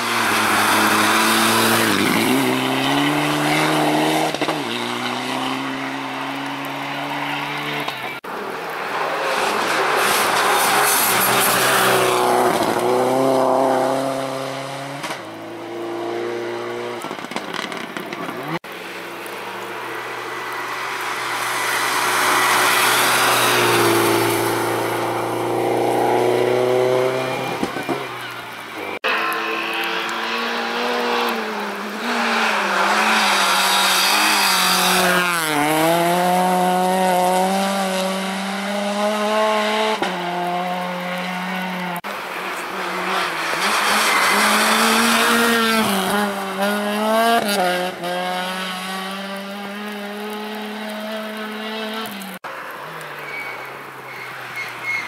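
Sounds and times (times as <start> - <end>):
rally car engines revving past: 0.0 - 55.0.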